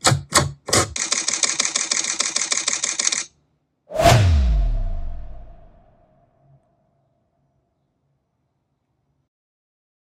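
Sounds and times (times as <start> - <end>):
deep boom: 3.9 - 6.1.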